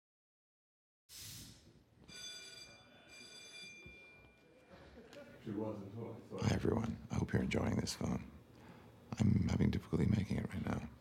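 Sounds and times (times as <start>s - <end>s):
faint high ringing tones: 2.0s - 4.6s.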